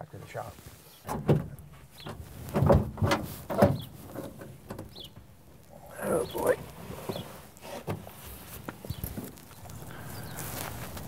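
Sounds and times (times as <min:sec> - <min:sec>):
people shifting in car seats: 0:00.5 - 0:05.3, 0:06.0 - 0:11.0
car door creaking open: 0:01.0 - 0:05.3.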